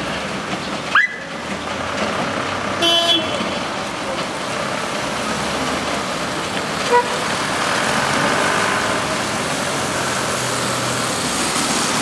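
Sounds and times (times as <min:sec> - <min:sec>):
road noise: 0:00.0 - 0:12.0
vehicle engines: 0:00.0 - 0:12.0.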